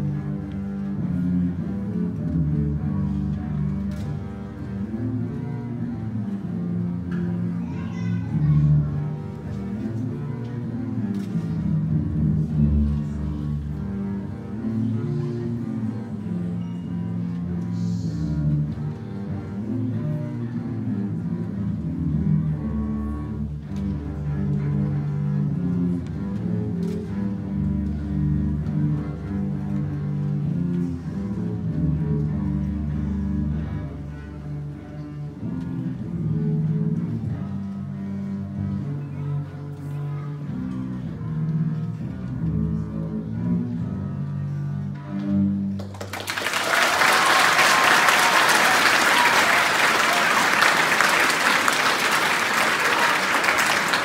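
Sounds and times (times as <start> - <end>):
bowed double basses playing: 0.0 - 54.0.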